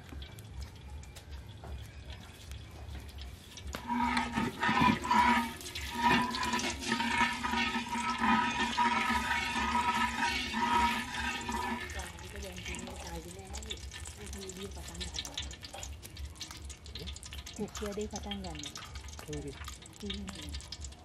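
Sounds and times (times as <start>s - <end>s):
water running with steady tone: 0.0s - 21.0s.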